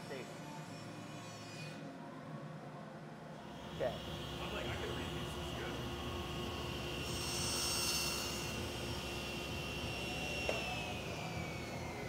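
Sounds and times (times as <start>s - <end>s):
saw cutting wood: 3.5s - 12.0s
table saw whining: 3.6s - 12.0s.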